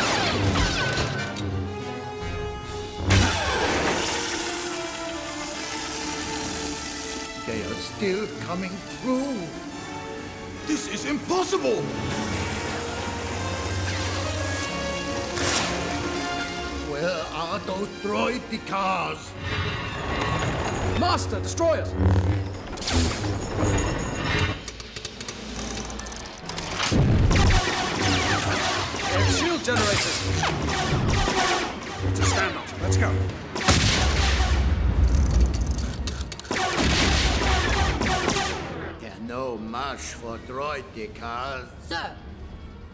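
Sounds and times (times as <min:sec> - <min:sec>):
orchestral film score: 0:00.0 - 0:42.9
blaster shots firing: 0:26.9 - 0:32.8, 0:33.5 - 0:34.9, 0:36.5 - 0:38.8.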